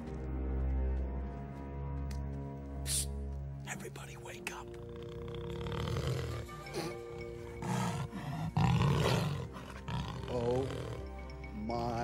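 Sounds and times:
suspense music: 0.0s - 12.0s
bear growling and roaring: 4.6s - 11.6s.

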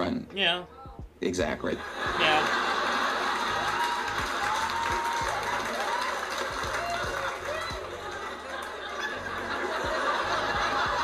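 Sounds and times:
audience clapping: 1.9s - 11.0s
people whooping: 3.3s - 9.4s.

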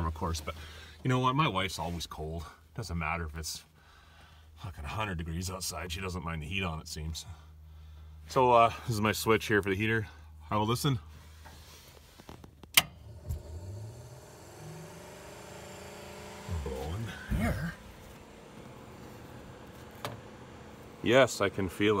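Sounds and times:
heater blower fan humming: 12.8s - 22.0s.

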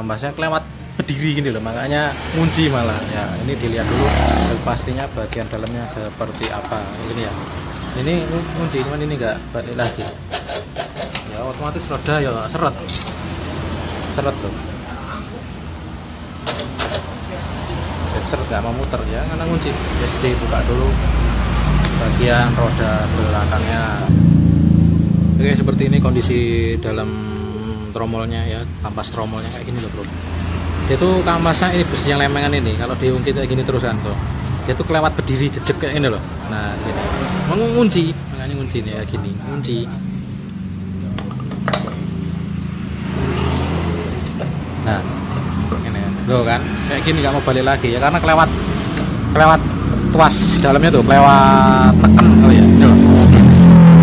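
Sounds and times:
metal clinks and scrapes: 12.8s - 13.3s
steady low hum: 21.2s - 30.2s.

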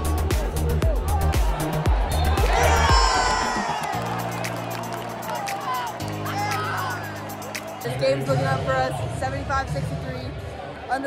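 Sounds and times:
crowd cheering and screaming: 1.0s - 8.3s.

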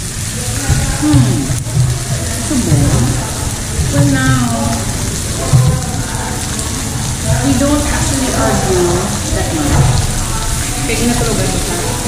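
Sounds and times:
pork sizzling on grill pan: 0.0s - 12.0s.

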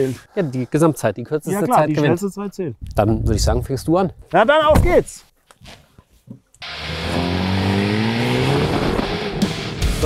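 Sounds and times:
car engine accelerating hard: 6.6s - 10.0s.

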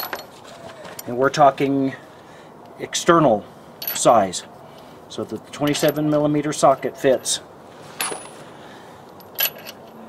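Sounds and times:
lug nuts clinking: 0.0s - 1.2s, 3.8s - 4.2s, 8.0s - 8.5s, 9.1s - 10.0s.

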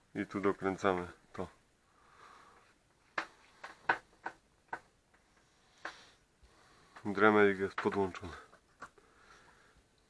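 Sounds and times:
light clicks and taps: 6.9s - 9.0s.

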